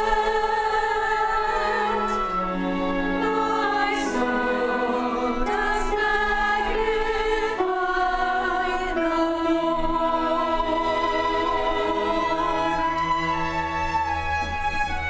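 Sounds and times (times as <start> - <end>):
choir singing held chords: 0.0 - 14.2
string ensemble: 0.0 - 15.0.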